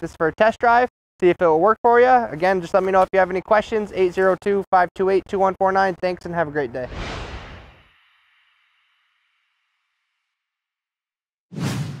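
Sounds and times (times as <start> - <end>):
whoosh sound effect: 6.8 - 7.9.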